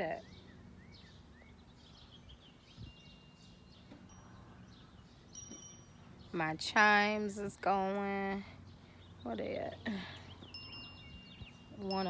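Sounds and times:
birds chirping softly: 0.0 - 12.0
wind chimes ringing: 2.8 - 6.4, 10.4 - 12.0.

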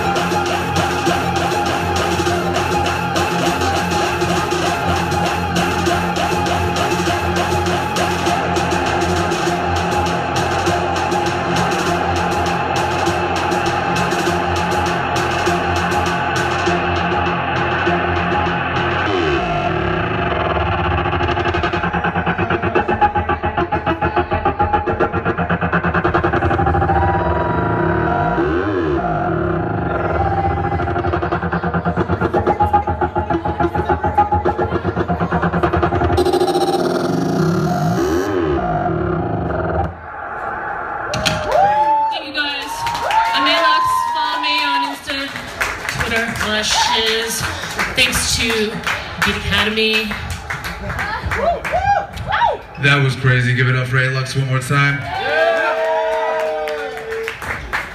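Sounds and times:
electronic dance music: 0.0 - 40.1, 41.0 - 55.4
rising and falling sweeps: 0.0 - 42.1
fast high ticking beat: 30.2 - 39.2.

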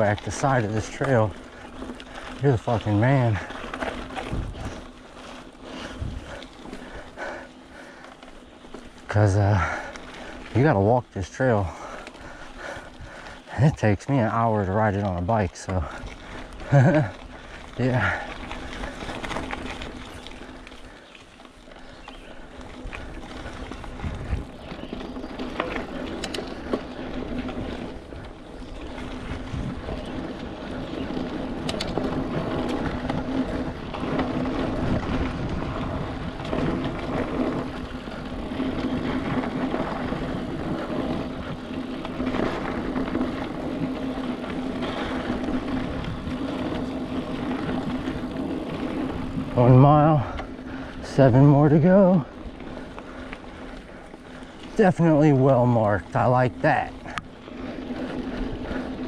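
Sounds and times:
mountain bike tyre and drivetrain noise: 0.0 - 59.0.

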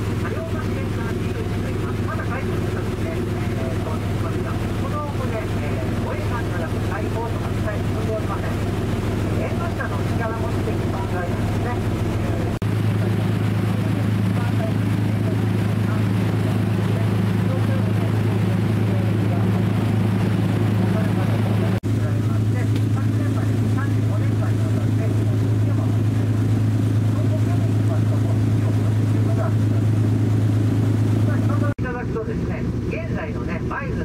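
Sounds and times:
boat engine droning: 0.0 - 34.0
faint voices: 0.0 - 34.0.

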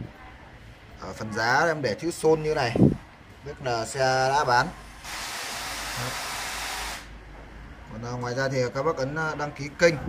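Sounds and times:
steady hiss: 4.7 - 7.2.

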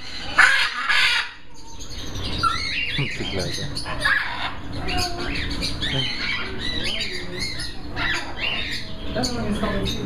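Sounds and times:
parrot squawking: 0.0 - 10.0.

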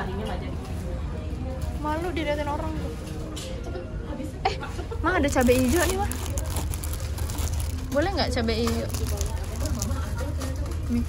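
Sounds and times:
quiet talking: 0.0 - 11.0
plastic packets rustling: 5.2 - 11.0.

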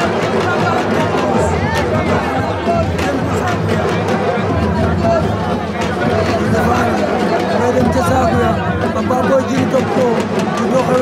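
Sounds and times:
stadium crowd hubbub: 0.0 - 11.0.

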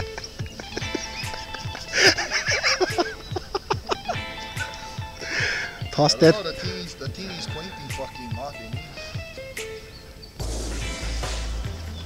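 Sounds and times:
background music with low beat: 0.0 - 12.0
wavering burst: 0.0 - 12.0.

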